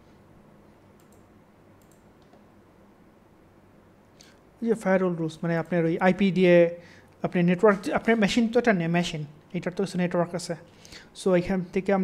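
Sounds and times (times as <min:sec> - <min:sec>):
steady low hum: 0:00.0 - 0:12.0
computer mouse clicks: 0:00.9 - 0:02.5.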